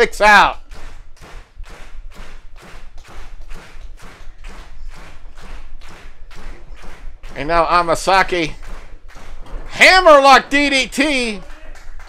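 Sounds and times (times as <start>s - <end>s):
rhythmic clapping: 0.0s - 12.0s.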